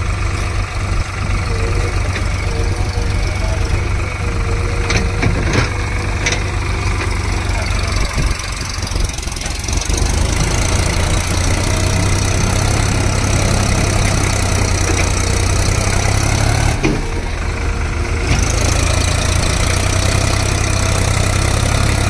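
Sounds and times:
tractor diesel engine straining: 0:00.0 - 0:22.0.

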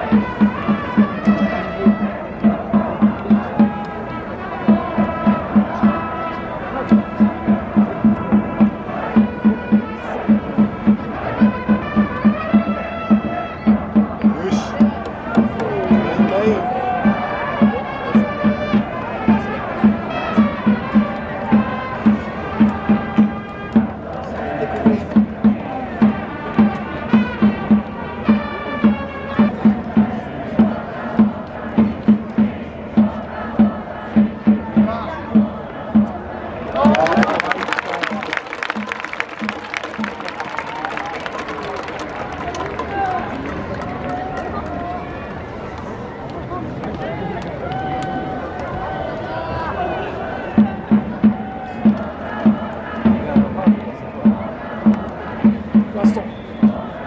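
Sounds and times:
drum beating steadily: 0:00.0 - 0:43.8, 0:48.8 - 0:57.0
chanted cheer melody: 0:00.0 - 0:45.5, 0:47.0 - 0:57.0
crowd cheering and clapping: 0:14.1 - 0:17.4, 0:36.6 - 0:54.0.

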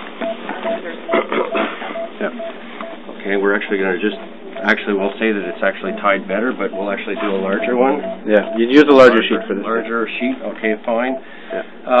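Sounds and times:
patient monitor beeping: 0:00.1 - 0:12.0
voices murmuring: 0:00.2 - 0:12.0.

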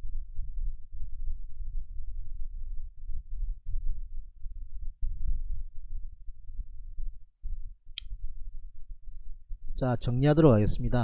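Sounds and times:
low muffled rumble: 0:00.0 - 0:11.0.

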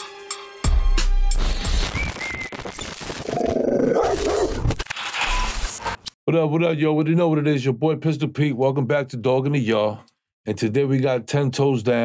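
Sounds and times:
dog growling and barking: 0:03.3 - 0:04.8.

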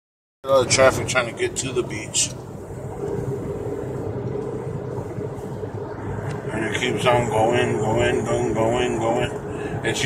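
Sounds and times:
car road and engine noise: 0:00.4 - 0:10.0
low hum: 0:00.5 - 0:10.0.

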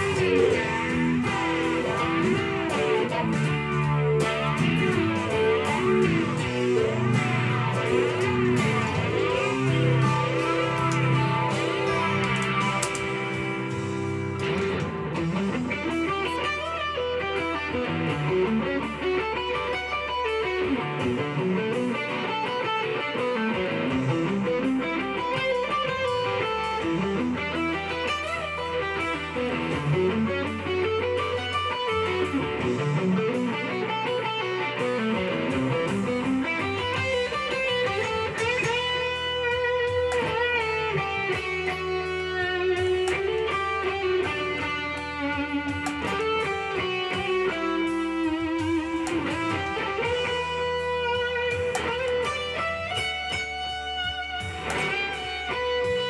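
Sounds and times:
electric guitar riff: 0:00.0 - 0:56.0.

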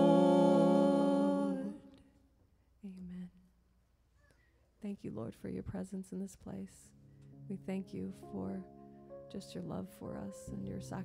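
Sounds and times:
singers holding a note: 0:00.0 - 0:02.0.

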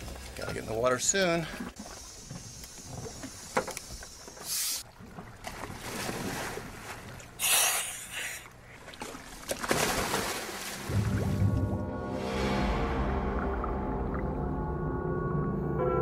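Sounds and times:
water splashing: 0:00.0 - 0:14.5
wind: 0:00.0 - 0:16.0.

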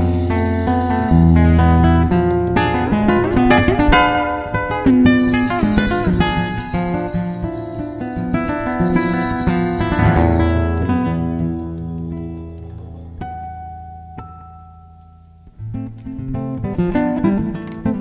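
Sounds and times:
high hissing percussion: 0:04.9 - 0:11.6.

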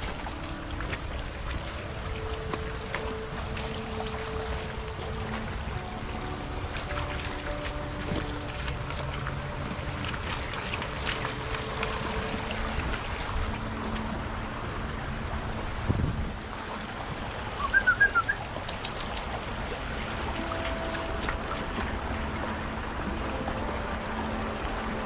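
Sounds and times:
creek running over rocks: 0:00.0 - 0:25.0.

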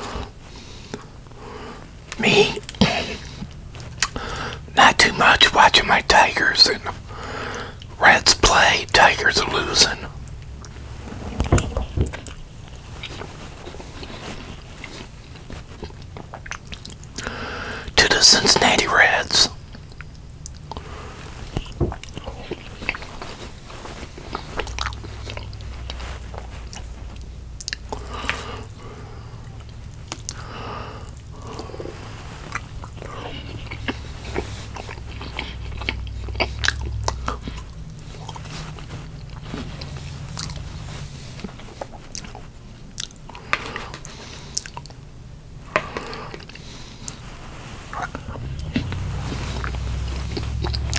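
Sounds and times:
man chewing food: 0:00.0 - 0:50.9
man's voice: 0:02.2 - 0:03.2, 0:08.0 - 0:10.1.

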